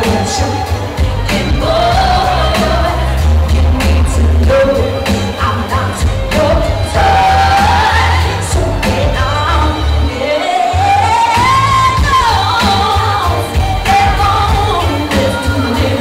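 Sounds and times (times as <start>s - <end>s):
amplified accompaniment with bass beat: 0.0s - 16.0s
backing singers: 0.0s - 16.0s
woman singing pop song live: 0.0s - 16.0s.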